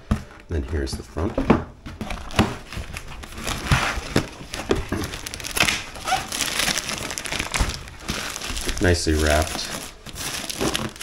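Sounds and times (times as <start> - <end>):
plastic wrap crinkling: 1.9 - 11.0.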